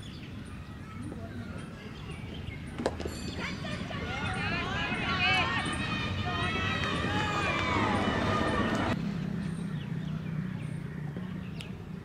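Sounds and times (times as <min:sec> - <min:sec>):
players calling out: 0:03.4 - 0:09.0.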